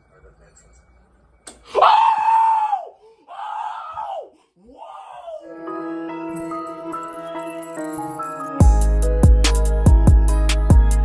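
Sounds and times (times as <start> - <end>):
woman screaming: 1.7 - 5.6.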